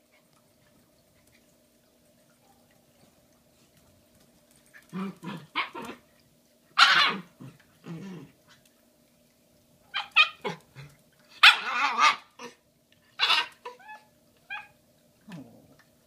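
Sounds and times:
puppy barking and yipping: 5.0s - 6.0s, 6.8s - 7.3s, 9.9s - 10.6s, 11.4s - 12.6s, 13.2s - 14.8s.

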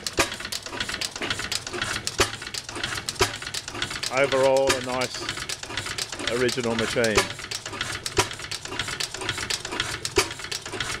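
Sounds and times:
stationary engine running: 0.0s - 11.0s.

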